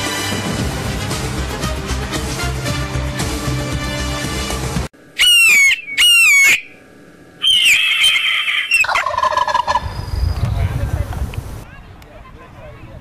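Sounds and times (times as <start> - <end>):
intro music: 0.0 - 4.9
wavering high bird call: 5.1 - 6.8, 7.4 - 10.1
hawk screeches: 5.2 - 6.7, 7.4 - 9.0
turkey gobble: 5.2 - 6.7, 7.4 - 10.0.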